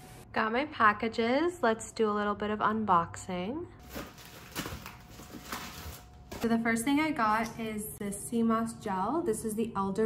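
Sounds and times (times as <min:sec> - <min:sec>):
plastic packaging crinkling: 0:03.8 - 0:06.5.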